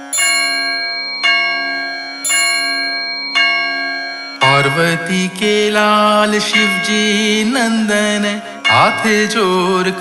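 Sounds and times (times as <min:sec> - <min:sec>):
bell ringing: 0:00.0 - 0:10.0.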